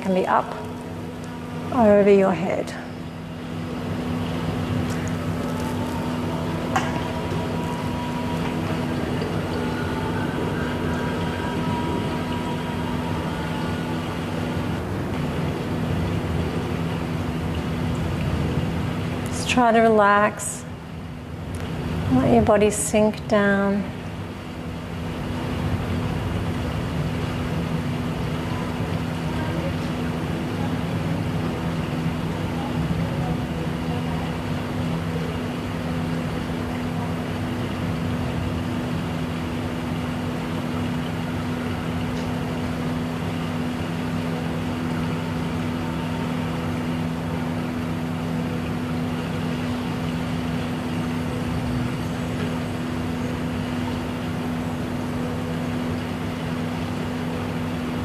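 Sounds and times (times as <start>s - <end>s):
low drone hum: 0.0s - 58.0s.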